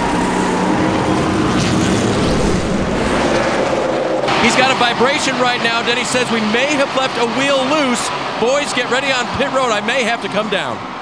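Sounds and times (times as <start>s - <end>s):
race car engines droning: 0.0s - 11.0s.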